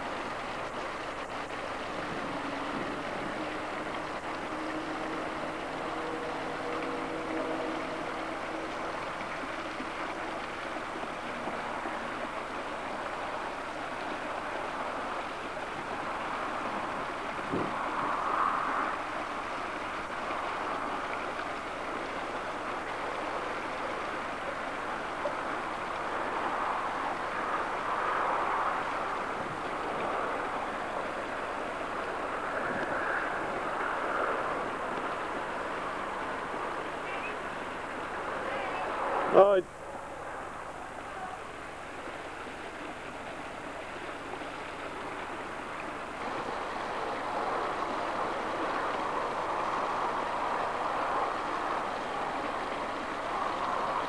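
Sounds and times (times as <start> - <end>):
steady rushing noise: 0.0 - 54.0.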